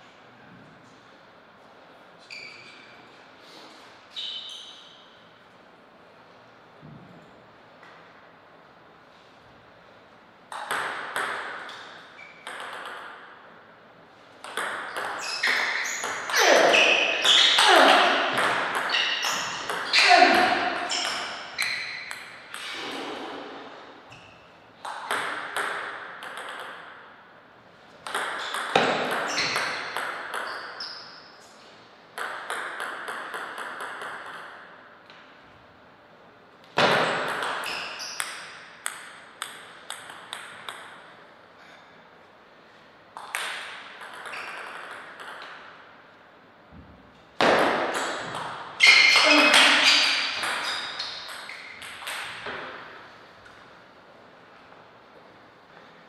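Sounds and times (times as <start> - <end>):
table tennis ball tapping: 10.5 - 13.3, 14.4 - 16.4, 24.8 - 27.0, 28.0 - 30.8, 32.2 - 34.6, 36.8 - 41.0, 43.2 - 45.7, 49.5 - 52.6.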